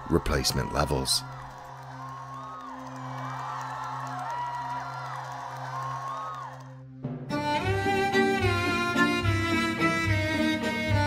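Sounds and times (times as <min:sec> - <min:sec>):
crowd cheering and whooping: 0:00.0 - 0:06.9.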